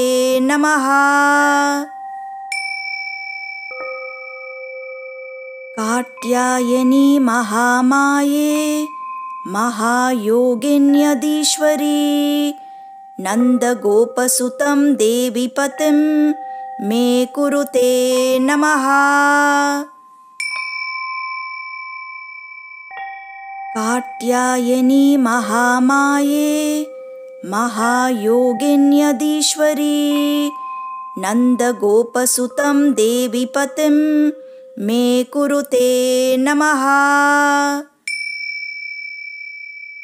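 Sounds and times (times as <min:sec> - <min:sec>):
bell ringing: 0:00.0 - 0:35.5, 0:38.1 - 0:40.0
high-pitched metal chime: 0:00.0 - 0:36.8, 0:38.0 - 0:40.0.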